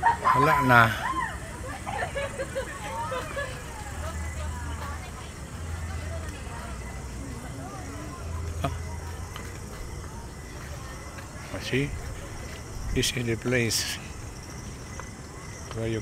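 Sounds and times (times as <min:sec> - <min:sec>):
people talking: 0:00.0 - 0:14.1, 0:15.6 - 0:16.0.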